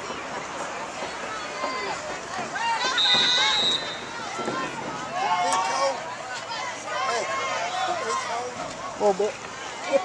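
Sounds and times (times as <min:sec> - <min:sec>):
spectators shouting: 0:01.0 - 0:10.0
high whistle blast: 0:02.8 - 0:04.2.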